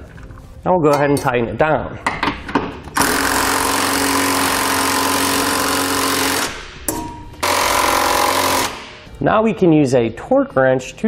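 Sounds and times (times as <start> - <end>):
electric ratchet running: 2.9 - 6.7, 7.4 - 9.1.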